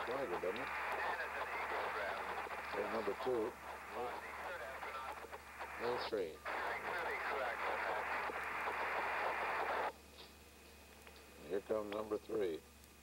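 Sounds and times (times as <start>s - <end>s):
radio hiss: 0.0s - 10.0s
faint voice over radio: 0.1s - 8.8s.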